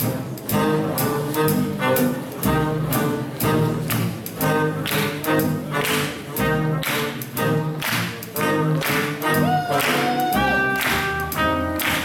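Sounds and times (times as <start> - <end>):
swing jazz band playing: 0.0 - 12.0.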